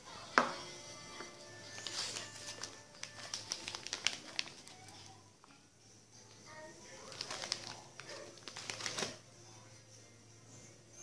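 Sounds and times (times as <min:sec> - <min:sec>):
coffee packet crinkling: 0:01.7 - 0:05.2, 0:06.9 - 0:09.2.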